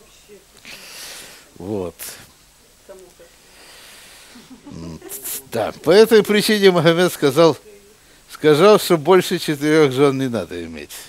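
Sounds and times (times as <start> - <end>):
man breathing: 0.6 - 1.6, 3.4 - 4.5
man speaking: 1.5 - 2.4, 4.7 - 7.7, 8.3 - 11.0
man chuckling: 4.3 - 5.9.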